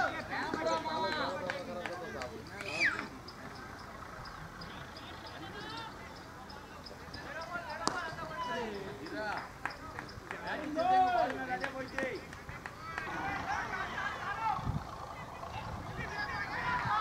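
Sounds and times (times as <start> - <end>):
players shouting: 0.0 - 17.0
cricket bat striking ball: 7.7 - 8.3.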